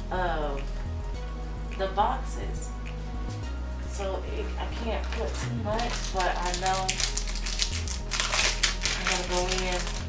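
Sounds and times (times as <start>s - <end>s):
paper sticker sheet crinkling: 5.0s - 10.0s.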